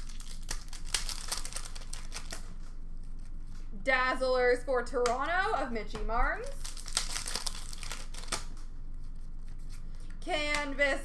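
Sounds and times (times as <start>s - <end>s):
foil wrapper crinkling and tearing: 0.0s - 3.6s, 6.4s - 10.1s.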